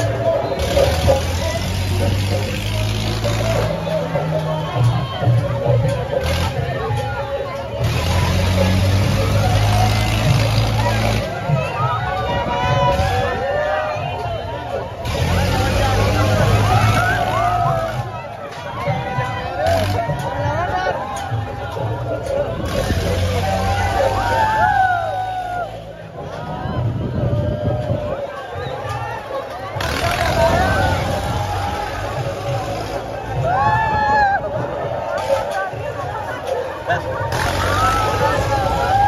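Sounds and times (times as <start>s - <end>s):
crowd chatter: 0.0s - 39.0s
music playing: 0.0s - 39.0s.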